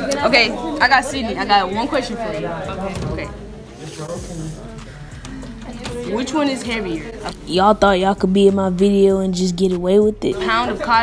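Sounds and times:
students talking: 0:00.0 - 0:11.0.

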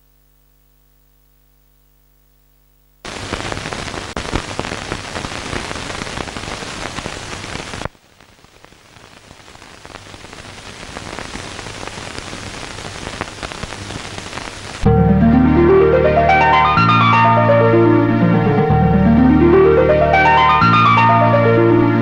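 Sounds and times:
dense crackling hiss: 0:00.0 - 0:22.0
music: 0:14.9 - 0:22.0.

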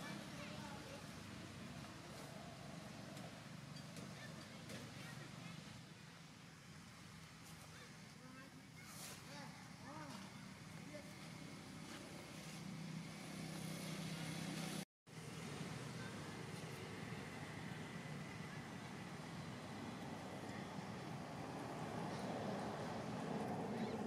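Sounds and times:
faint voices: 0:15.4 - 0:24.0.

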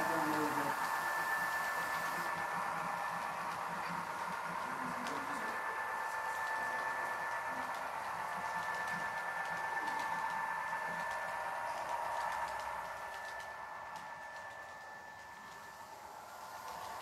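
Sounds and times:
model train whirring: 0:00.0 - 0:17.0.

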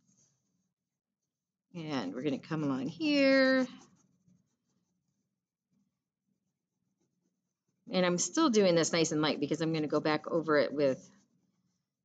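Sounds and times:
crayon rubbing on paper: 0:02.2 - 0:05.3, 0:09.7 - 0:12.0.

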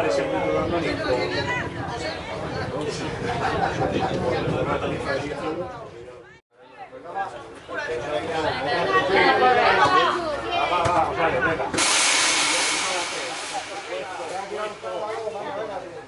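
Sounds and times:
people talking: 0:07.2 - 0:16.0
loud hiss: 0:11.8 - 0:15.6.

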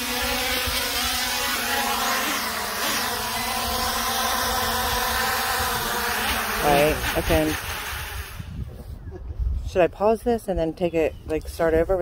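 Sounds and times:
drone propellers buzzing: 0:00.0 - 0:08.8.

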